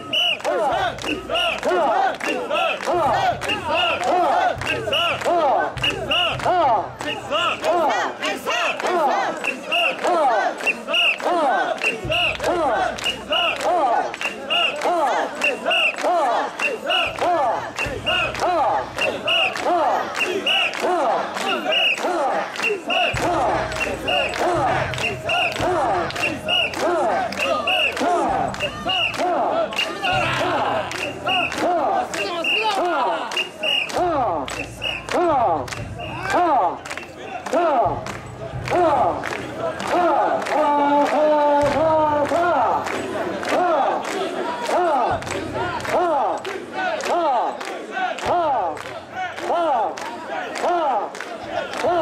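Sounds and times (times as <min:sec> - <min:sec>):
men shouting rhythmic call: 0:00.0 - 0:52.0.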